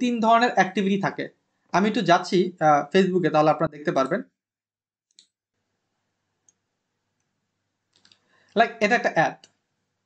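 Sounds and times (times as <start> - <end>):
man speaking: 0.0 - 4.4, 8.6 - 9.5
faint computer mouse clicks: 7.9 - 8.6.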